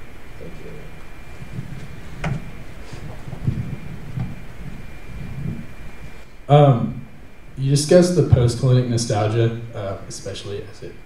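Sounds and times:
faint high whine: 0:00.0 - 0:11.0
steady low hum: 0:00.0 - 0:11.0.

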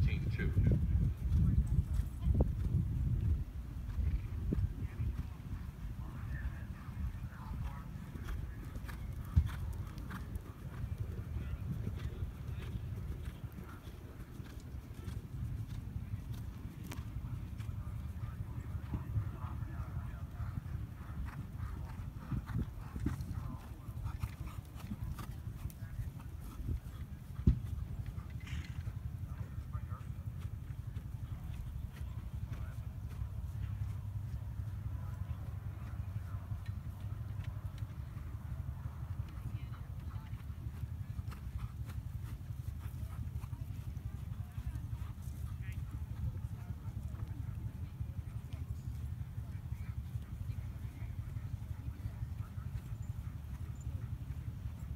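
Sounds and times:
hoofbeats on sand: 0:00.0 - 0:54.9.

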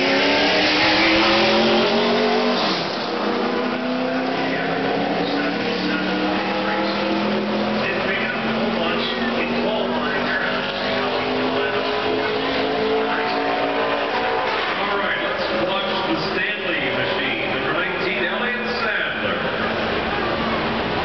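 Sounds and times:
race car engine at speed: 0:00.0 - 0:21.0
voices: 0:00.4 - 0:21.0.

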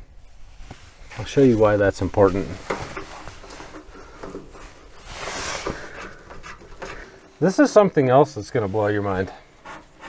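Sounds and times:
hands rustling among wires: 0:00.0 - 0:10.0
soft hiss: 0:00.0 - 0:10.0.

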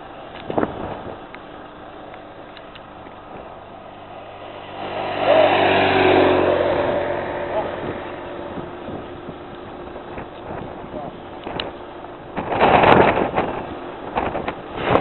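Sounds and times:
motorcycle passing by: 0:03.3 - 0:11.2.

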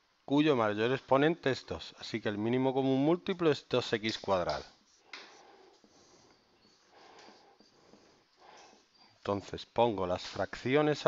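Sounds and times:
marker scratching on whiteboard: 0:04.3 - 0:08.6.

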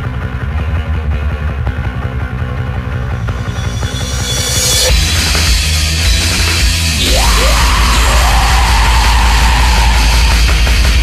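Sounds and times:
black metal music with drums: 0:00.0 - 0:11.0.

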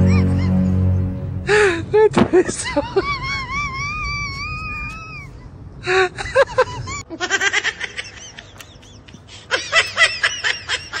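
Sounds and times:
person giggling: 0:00.0 - 0:11.0.

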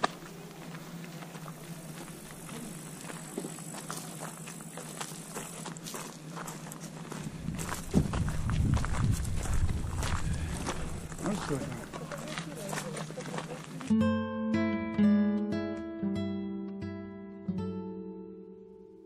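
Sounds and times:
footsteps on gravel: 0:00.0 - 0:13.9
low rumble on microphone: 0:07.3 - 0:11.2.

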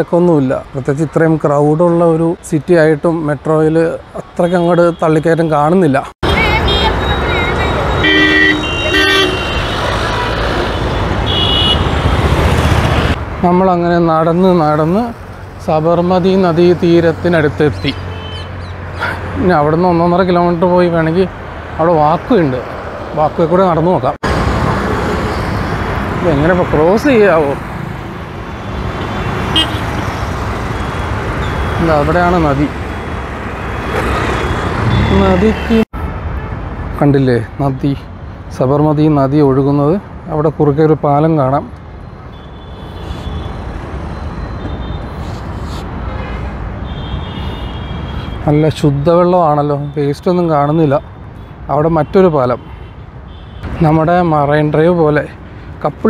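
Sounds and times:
traffic engine rumble: 0:00.0 - 0:56.0
high-pitched horn beep: 0:06.2 - 0:09.8
vehicle horns honking: 0:06.2 - 0:13.2, 0:17.8 - 0:18.6, 0:28.6 - 0:32.2, 0:33.8 - 0:36.6, 0:42.2 - 0:45.2, 0:46.0 - 0:48.5, 0:51.0 - 0:53.8
motorcycles and scooters passing: 0:09.2 - 0:13.3, 0:24.3 - 0:35.7.

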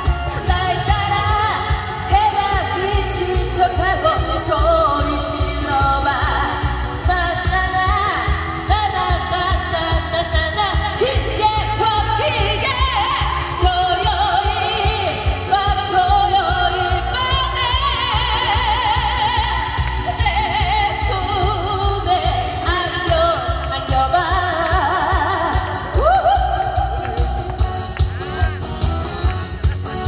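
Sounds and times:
woman singing into microphone: 0:00.0 - 0:27.6
accompaniment track with beat: 0:00.0 - 0:30.0.

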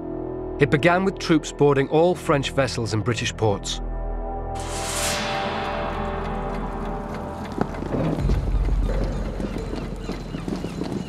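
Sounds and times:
footfalls on a hard surface: 0:07.2 - 0:11.0.

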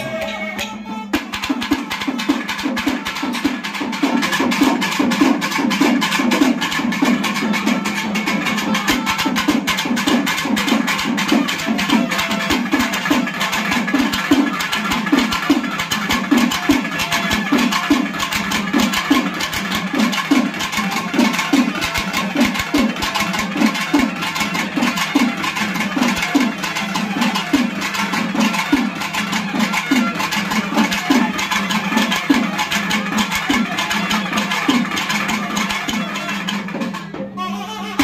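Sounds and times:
rapid sharp drum strokes: 0:00.0 - 0:38.0.

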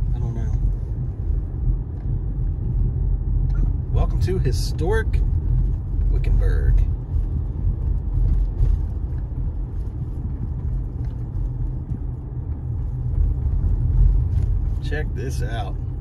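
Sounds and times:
car road and engine rumble: 0:00.0 - 0:16.0.

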